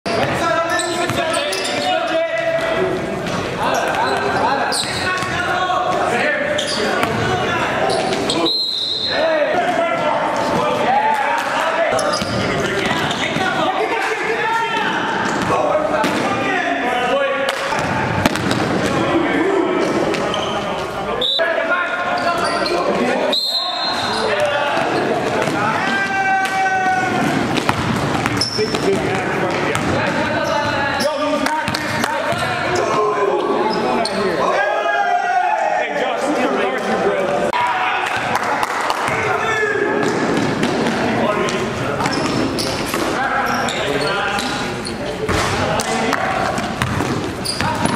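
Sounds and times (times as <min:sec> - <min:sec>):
shoe squeaks: 0:00.1 - 0:02.2, 0:03.7 - 0:05.3, 0:06.5 - 0:07.1, 0:07.8 - 0:09.2, 0:11.9 - 0:13.4, 0:20.2 - 0:21.4, 0:22.1 - 0:25.2, 0:28.2 - 0:29.0, 0:30.4 - 0:34.4, 0:42.0 - 0:45.3, 0:46.8 - 0:47.9
players calling out: 0:00.1 - 0:47.9.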